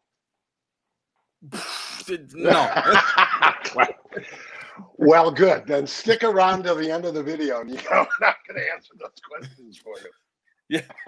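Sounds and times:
man speaking: 0:01.5 - 0:10.1, 0:10.7 - 0:11.0
man laughing: 0:01.6 - 0:04.8, 0:07.7 - 0:10.1.

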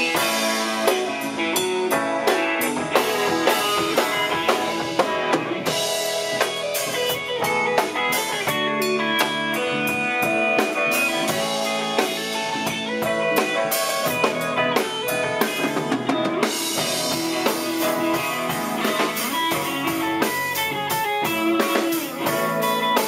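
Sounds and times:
drum kit with cymbals: 0:00.0 - 0:23.0
electric guitars: 0:00.0 - 0:23.0.

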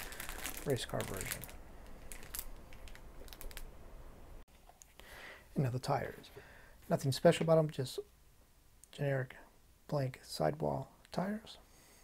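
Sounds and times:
plastic bag crinkling: 0:00.0 - 0:03.7.

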